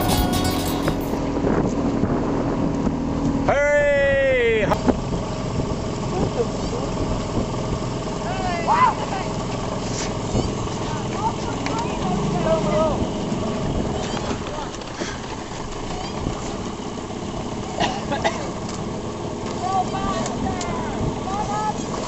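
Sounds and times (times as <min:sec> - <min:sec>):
outboard motor humming: 0:04.8 - 0:22.0.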